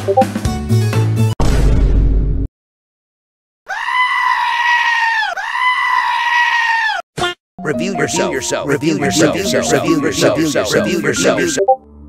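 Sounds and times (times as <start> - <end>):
high-pitched screams: 3.7 - 7.0.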